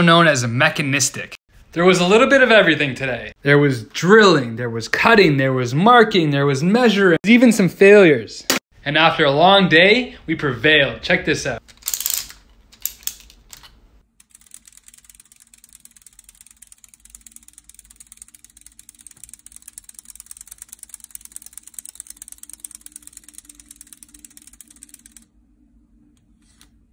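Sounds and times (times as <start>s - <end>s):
plastic gear train clicking: 11.7s - 25.3s.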